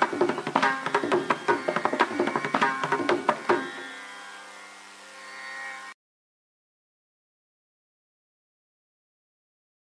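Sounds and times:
drum strokes: 0:00.0 - 0:04.0.

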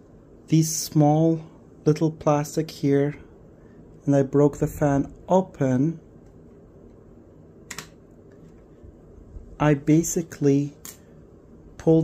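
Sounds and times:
sharp plastic click: 0:07.7 - 0:08.0.

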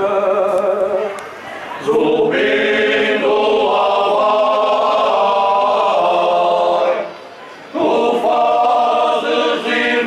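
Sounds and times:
men's choir singing unaccompanied: 0:01.8 - 0:07.1, 0:07.7 - 0:10.0.

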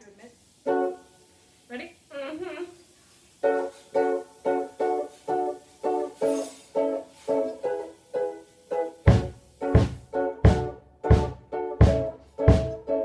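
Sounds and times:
ukulele strumming chords: 0:00.7 - 0:01.1, 0:09.1 - 0:13.0.

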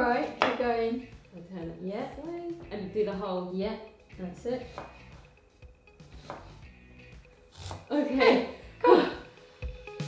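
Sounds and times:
quiet background music: 0:00.0 - 0:10.0
knife chopping on wooden board: 0:00.2 - 0:00.6, 0:04.6 - 0:05.3, 0:06.0 - 0:06.7, 0:07.5 - 0:07.9.

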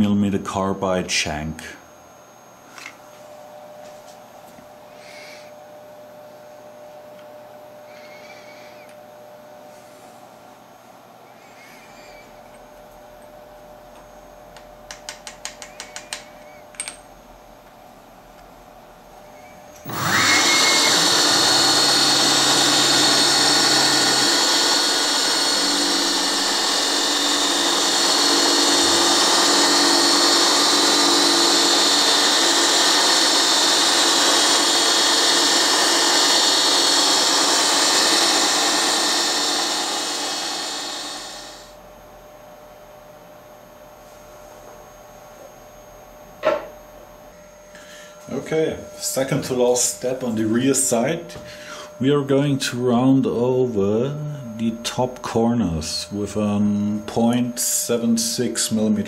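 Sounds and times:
milling machine spindle whine: 0:19.1 - 0:42.4, 0:44.5 - 0:59.0
cutter cutting steel: 0:19.8 - 0:41.7.

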